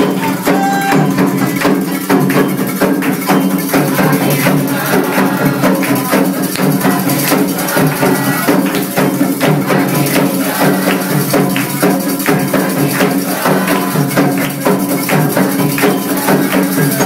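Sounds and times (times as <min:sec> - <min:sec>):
hand drums fast rhythm: 0:00.0 - 0:17.0.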